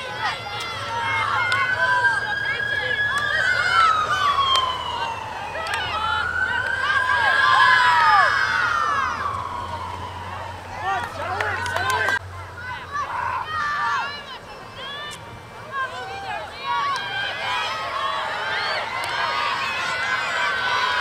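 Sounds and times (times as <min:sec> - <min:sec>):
voices shouting and calling: 0:00.0 - 0:21.0
siren wailing: 0:00.8 - 0:12.2.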